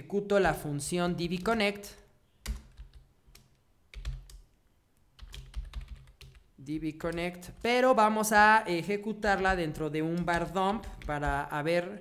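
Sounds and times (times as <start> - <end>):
typing on computer keyboard: 2.4 - 4.5, 5.2 - 7.6, 9.2 - 11.5.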